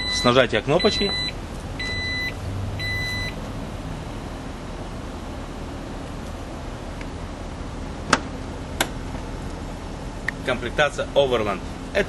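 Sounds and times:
short high warning beeps: 0:00.0 - 0:03.4.

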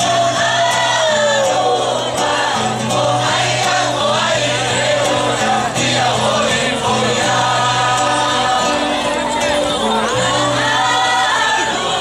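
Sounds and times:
mixed group singing in chorus: 0:00.0 - 0:12.0.

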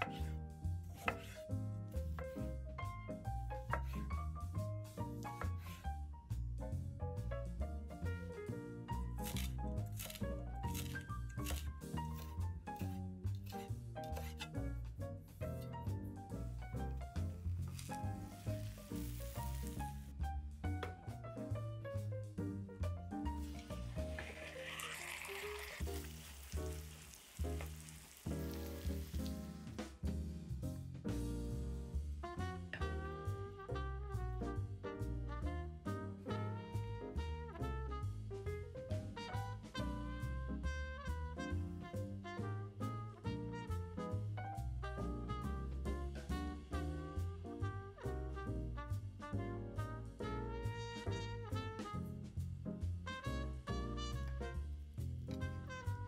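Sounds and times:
background music: 0:00.0 - 0:26.8
instrumental background music: 0:00.0 - 0:56.0
knife slicing onto cutting board: 0:01.0 - 0:01.4, 0:09.2 - 0:14.6, 0:17.6 - 0:20.0, 0:23.4 - 0:29.4
omelette sizzling in a frying pan: 0:17.7 - 0:20.1, 0:23.4 - 0:29.5.

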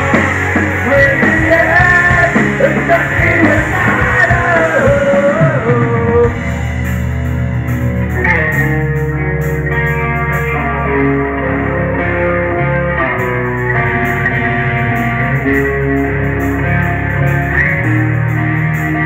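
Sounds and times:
bass and drums: 0:00.0 - 0:19.0
electric guitar lead: 0:00.0 - 0:19.0.

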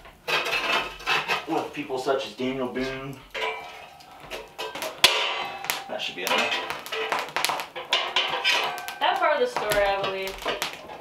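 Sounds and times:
fire tool scraping coals: 0:00.0 - 0:11.0.

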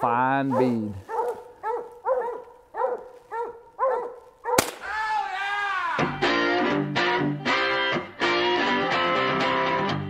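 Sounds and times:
dog barking: 0:00.4 - 0:04.6
gunshot: 0:04.6 - 0:05.0.

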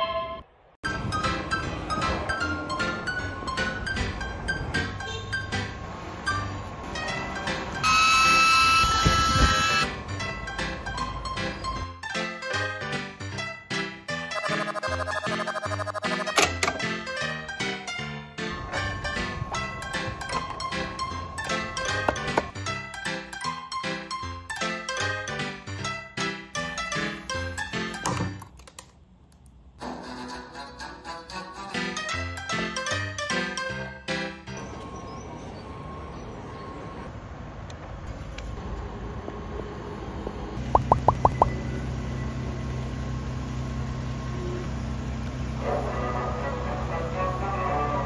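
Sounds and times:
background music: 0:00.0 - 0:28.4, 0:29.8 - 0:35.4, 0:45.6 - 0:48.0.

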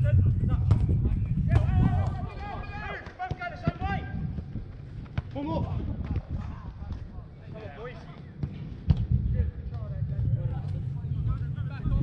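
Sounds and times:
football being kicked: 0:00.6 - 0:02.3, 0:02.9 - 0:07.1
players shouting: 0:01.5 - 0:04.2.

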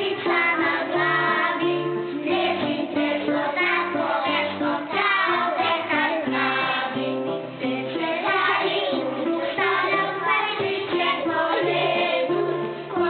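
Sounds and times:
children singing: 0:00.0 - 0:13.0
instrumental accompaniment: 0:00.0 - 0:13.0.

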